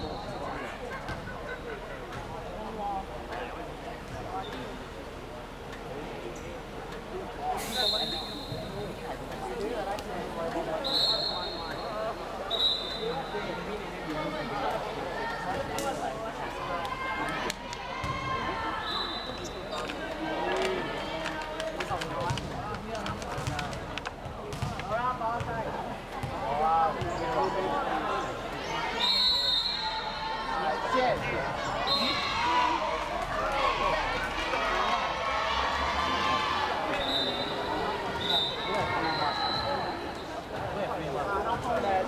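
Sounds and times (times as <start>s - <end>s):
referee whistle blasts: 7.6s - 8.8s, 10.8s - 11.9s, 12.5s - 13.3s, 28.9s - 30.2s, 31.8s - 32.4s, 36.9s - 40.2s
volleyball bouncing and struck: 22.2s - 25.5s
people calling out: 27.9s - 40.4s.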